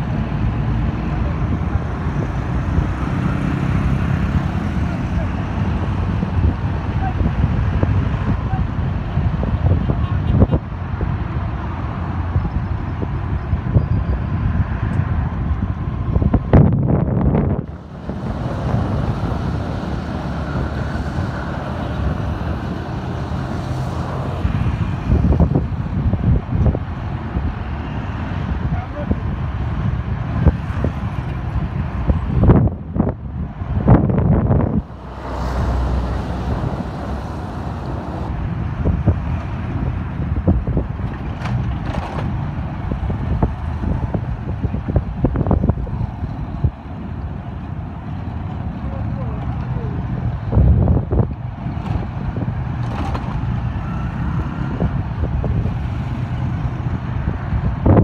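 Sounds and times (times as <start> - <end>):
road traffic: 0.0 - 58.0
wind buffeting microphone: 0.0 - 58.0.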